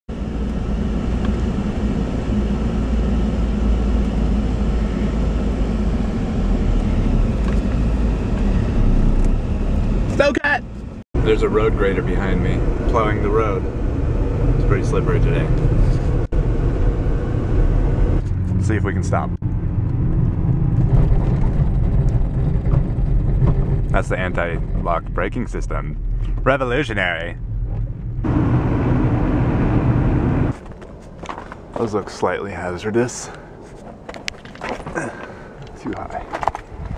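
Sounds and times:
anti-lock brakes pulsing rumble: 0.1 - 32.0
car engine and road noise: 0.1 - 36.9
tyres on packed snow: 30.5 - 36.9.

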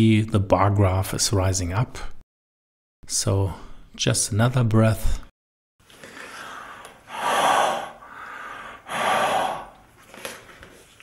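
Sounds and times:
person blowing breaths: 5.9 - 9.9.

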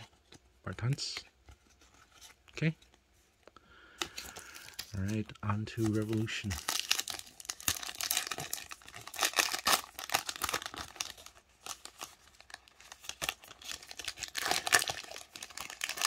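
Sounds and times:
foil wrapper crinkling: 4.0 - 16.0.

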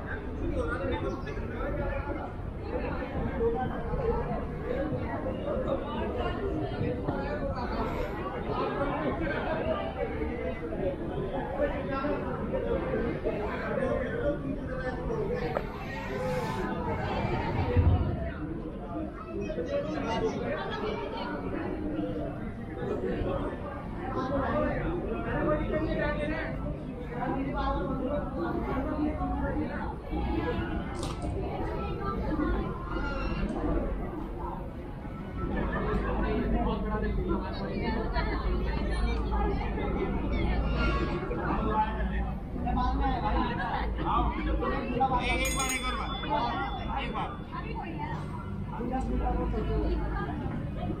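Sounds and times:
indistinct chatter: 0.0 - 51.0
steady low rumble: 16.7 - 18.9.

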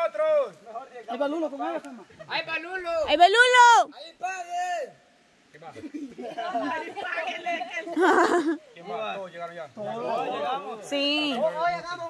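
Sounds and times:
people chattering: 5.3 - 12.0.

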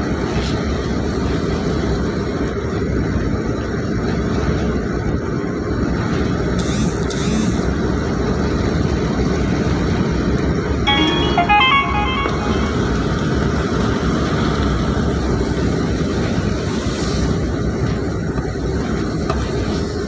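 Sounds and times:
short electronic tune: 10.9 - 13.4
vehicle engine and tyres rumbling: 14.6 - 20.0.

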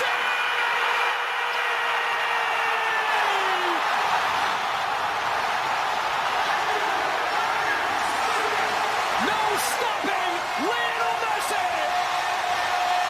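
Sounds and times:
stadium crowd roaring: 0.0 - 13.0.

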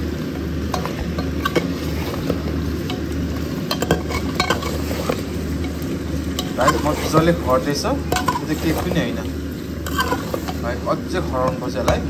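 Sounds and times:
meat sizzling in a pot: 0.0 - 12.0.

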